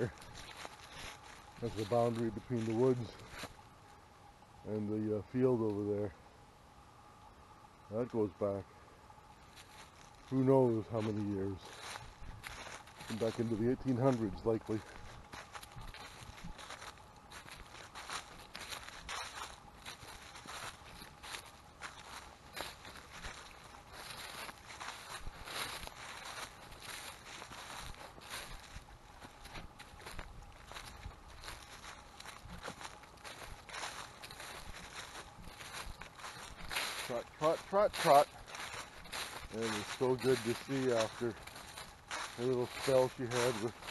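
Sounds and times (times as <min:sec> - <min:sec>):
footsteps in dry leaves: 0:00.0 - 0:06.1, 0:06.9 - 0:43.9.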